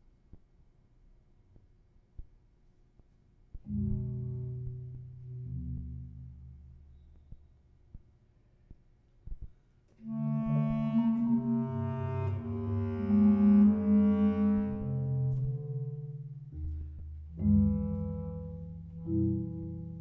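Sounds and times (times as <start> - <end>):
bass clarinet sustained low notes: 10.0 - 20.0.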